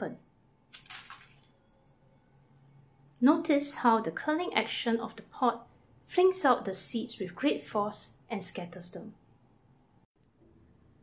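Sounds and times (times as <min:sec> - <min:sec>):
seed pod bursting open: 0:00.7 - 0:01.5.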